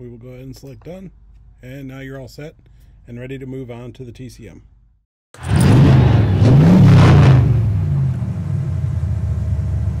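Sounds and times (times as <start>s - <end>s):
engine revving: 5.4s - 10.0s.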